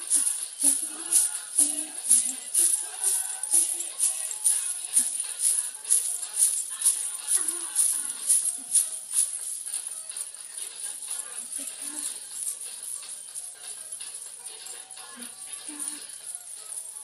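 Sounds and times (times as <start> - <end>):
coins on hip scarf jingling: 0.0 - 17.0
music playing: 0.0 - 17.0.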